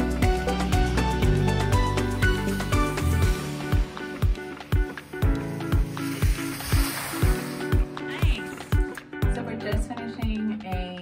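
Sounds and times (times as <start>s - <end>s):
kick drum beat: 7.8s - 11.0s.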